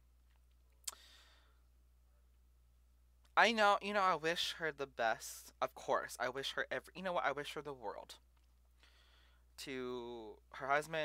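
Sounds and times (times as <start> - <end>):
low steady hum: 0.0 - 11.0
soft breath out: 0.9 - 1.7, 8.8 - 9.5.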